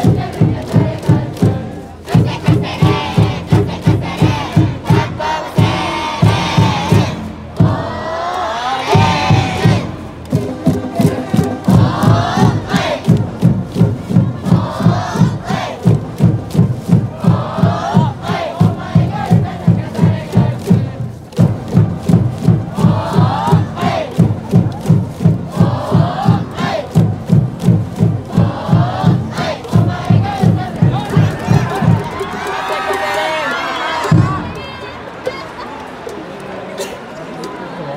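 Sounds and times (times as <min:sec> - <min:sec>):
steady drum beat: 0:00.0 - 0:08.2, 0:08.8 - 0:35.0
crowd chanting in unison: 0:00.0 - 0:37.9.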